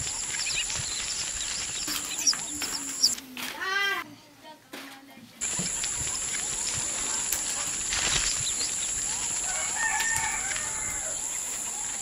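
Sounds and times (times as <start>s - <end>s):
bird chirps: 0.0s - 3.2s, 5.4s - 12.0s
high-pitched insect drone: 5.4s - 12.0s.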